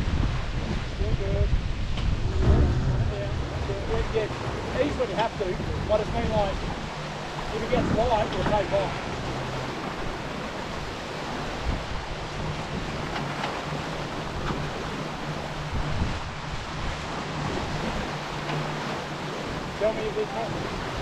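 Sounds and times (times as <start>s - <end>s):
water rushing along a hull: 0.0s - 21.0s
wind buffeting microphone: 0.0s - 21.0s.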